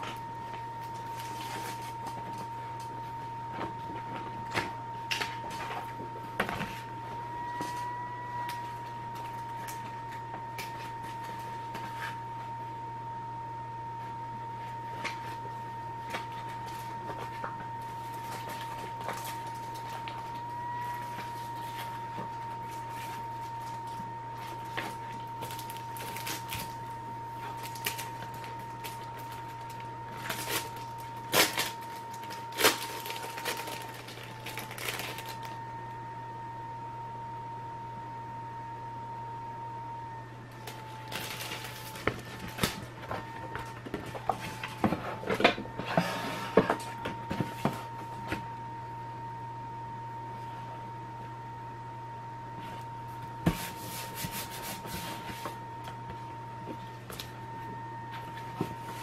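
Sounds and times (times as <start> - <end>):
low hum: 0.0 - 59.0
steady high whine: 0.0 - 59.0.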